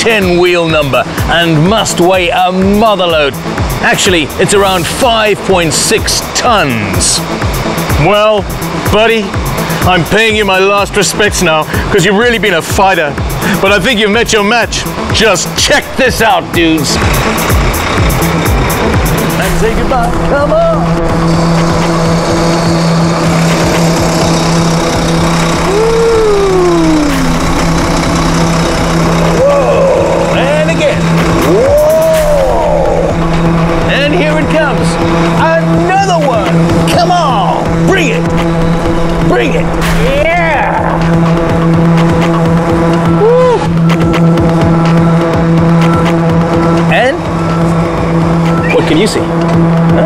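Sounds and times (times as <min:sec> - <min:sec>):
background music: 0:00.0 - 0:50.0
truck engine running: 0:00.0 - 0:50.0
people whooping: 0:25.6 - 0:27.5, 0:29.4 - 0:30.5, 0:31.3 - 0:33.2, 0:43.1 - 0:43.8.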